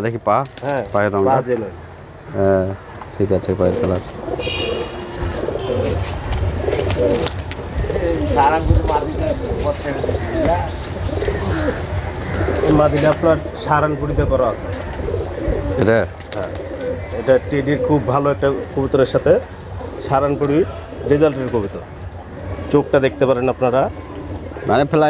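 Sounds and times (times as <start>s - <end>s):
pigeons cooing: 0.6s - 25.0s.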